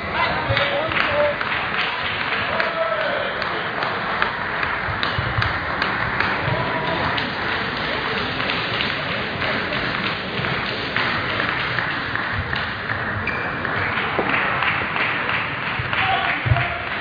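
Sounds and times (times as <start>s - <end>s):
murmur of crowd chatter: 0.0s - 17.0s
table tennis balls tapping: 3.4s - 16.6s.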